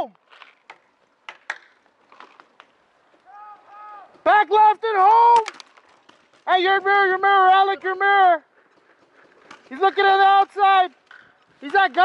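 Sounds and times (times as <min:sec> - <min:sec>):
faint distant shouting: 0:03.2 - 0:04.2.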